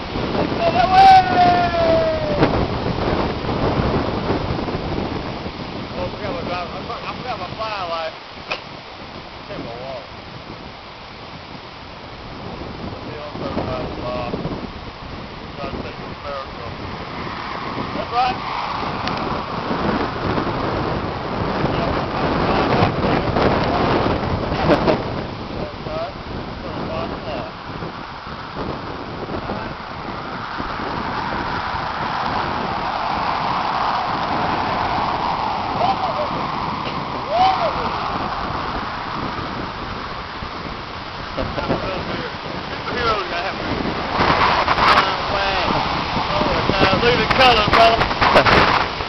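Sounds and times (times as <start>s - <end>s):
storm wind gusting: 0.0s - 49.0s
person calling out: 0.6s - 2.4s, 37.3s - 38.0s.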